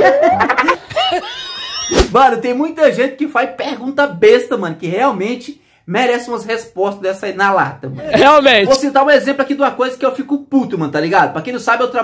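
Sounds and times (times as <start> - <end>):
people laughing: 0.0 - 2.0.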